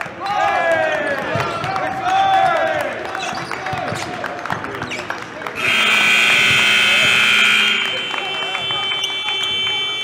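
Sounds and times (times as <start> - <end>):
basketballs bouncing: 1.2 - 10.0.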